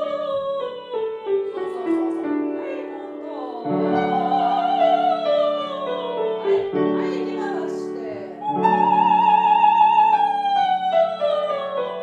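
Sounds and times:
classical singing with vibrato: 0:00.0 - 0:12.0
grand piano chords: 0:00.0 - 0:12.0.

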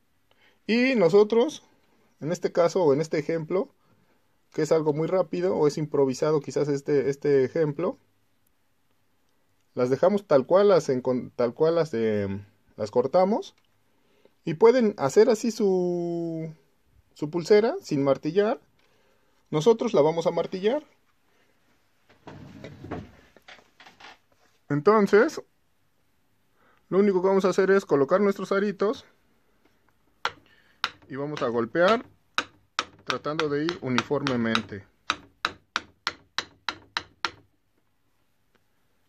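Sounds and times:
objects scraping on work surface: 0:22.2 - 0:23.3.

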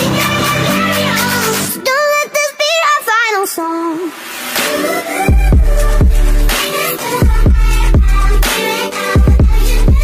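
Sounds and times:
high voice singing with vibrato: 0:00.0 - 0:10.0.

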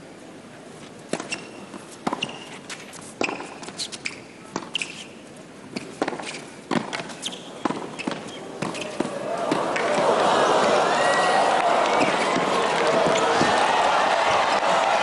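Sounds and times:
tennis ball bouncing on court: 0:01.1 - 0:02.6, 0:03.2 - 0:05.1, 0:05.7 - 0:10.1, 0:11.8 - 0:13.6
tennis ball hit by racquets: 0:03.2 - 0:05.1, 0:05.7 - 0:10.2.

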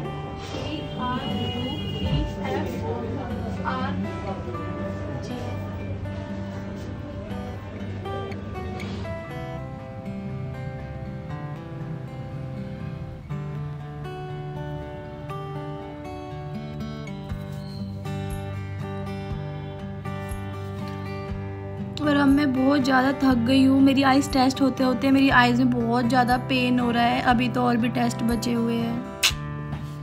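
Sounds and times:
guitar-led background music: 0:00.0 - 0:30.0.

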